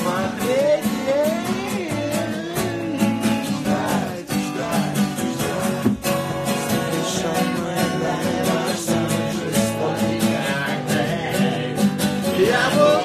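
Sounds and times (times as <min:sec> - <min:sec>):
acoustic guitar strumming: 0:00.0 - 0:13.0.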